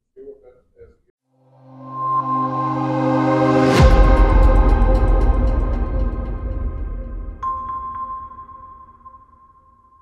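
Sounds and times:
high chime note ringing: 1.7s - 5.5s, 7.4s - 9.8s
low music: 1.7s - 9.0s.

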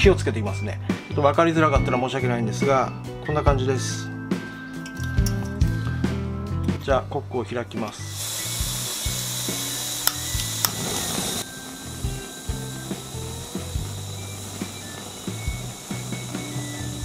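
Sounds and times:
sharp igniter clicks: 7.8s - 17.0s
gas burner burning: 7.9s - 17.0s
gas hissing: 7.9s - 17.0s.

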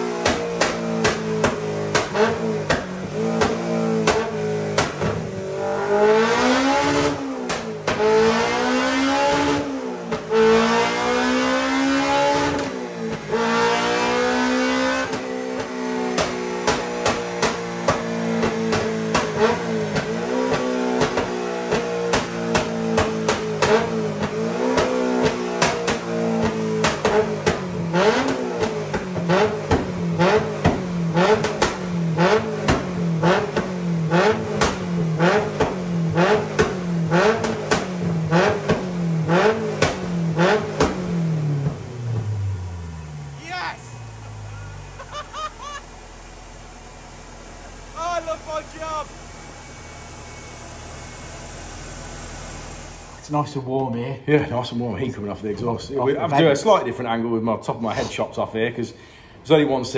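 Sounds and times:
exhaust pulse with sharp crack: 0.0s - 53.5s
car engine running: 0.0s - 53.7s.

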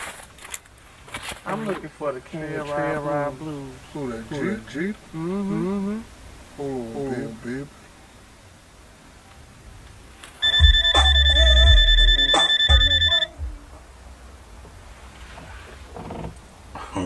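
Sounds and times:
person speaking: 1.5s - 7.8s
mobile phone ringing: 10.4s - 13.4s.

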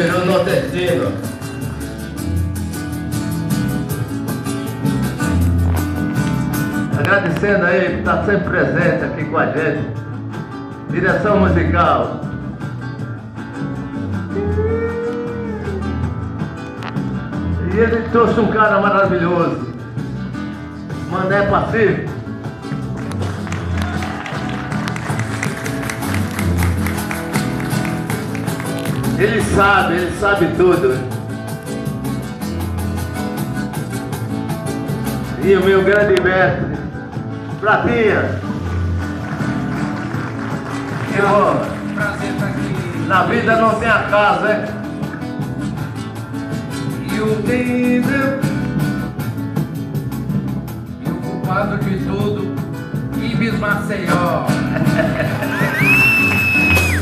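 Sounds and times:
drum kit: 0.0s - 8.0s, 20.9s - 57.0s
acoustic guitar strumming: 0.0s - 57.0s
double bass: 0.0s - 57.0s.

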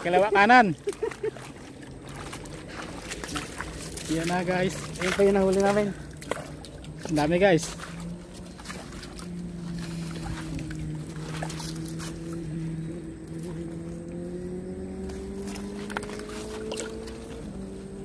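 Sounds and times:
engine hum: 0.0s - 18.0s.

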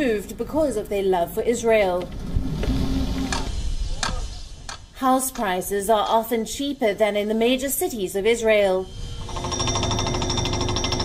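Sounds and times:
hydraulic breaker hammering rock: 9.3s - 11.0s.

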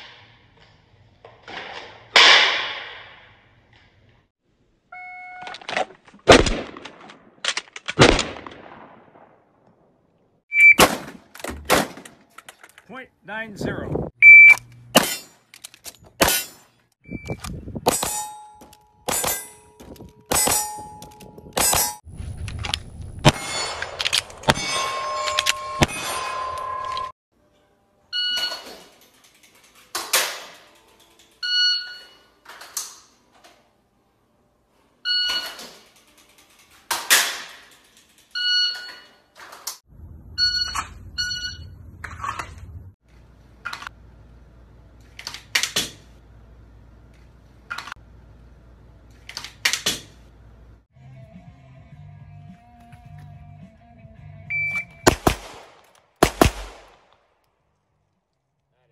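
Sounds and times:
shot timer beeps: 10.5s - 10.8s, 14.2s - 14.6s, 54.5s - 55.0s
steel targets ringing: 17.9s - 22.0s, 23.3s - 27.1s
pistol shots: 55.0s - 57.2s.

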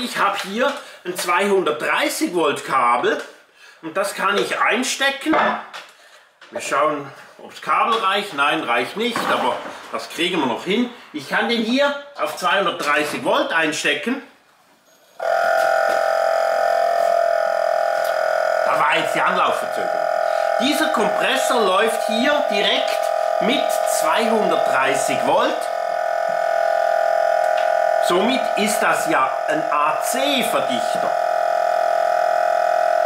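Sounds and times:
compressor electric hum: 14.9s - 33.0s.

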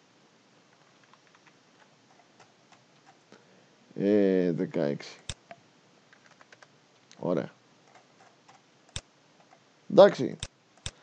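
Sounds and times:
keyboard keystrokes clicking: 6.1s - 6.7s.

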